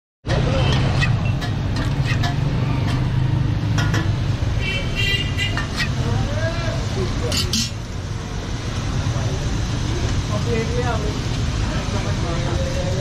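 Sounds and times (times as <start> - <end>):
metal spatula scraping griddle: 0.3 - 4.3, 5.3 - 6.2, 7.2 - 7.9.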